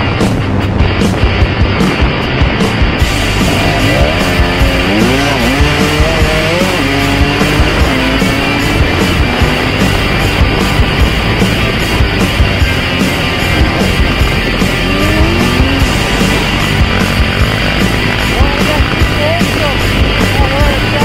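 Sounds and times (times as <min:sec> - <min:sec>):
dirt bike engine revving: 0:00.0 - 0:21.0
rock music with driving beat: 0:00.0 - 0:21.0.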